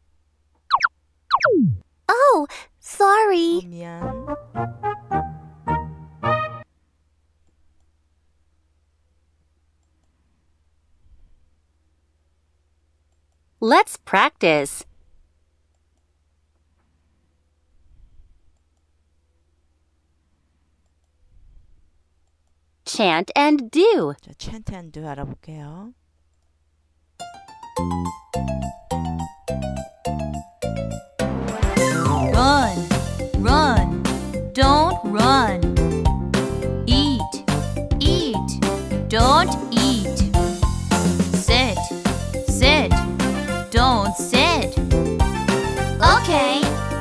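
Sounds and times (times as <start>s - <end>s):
cartoon falling chirps: 0.7s - 1.8s
downward pitch slide: 0.7s - 1.8s
person speaking: 1.7s - 4.2s, 13.6s - 14.8s, 32.2s - 32.8s, 33.4s - 34.0s, 34.6s - 35.6s, 36.9s - 40.3s, 41.4s - 43.0s, 43.7s - 44.8s, 46.0s - 46.8s.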